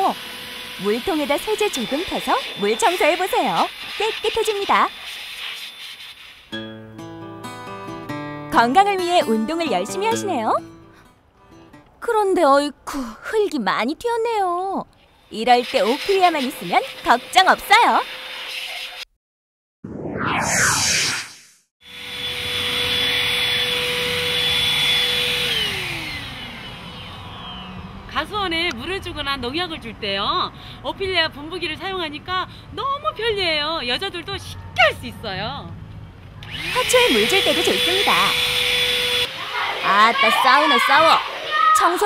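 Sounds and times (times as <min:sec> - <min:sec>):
motor spinning down: 0:00.0 - 0:05.0, 0:19.9 - 0:28.2, 0:36.4 - 0:41.5
vacuum motor whining: 0:00.0 - 0:05.8, 0:21.9 - 0:28.0, 0:36.4 - 0:41.5
vacuum cleaner spraying water hiss: 0:00.0 - 0:06.6, 0:15.4 - 0:19.0, 0:36.6 - 0:42.0
whoosh: 0:19.8 - 0:21.7.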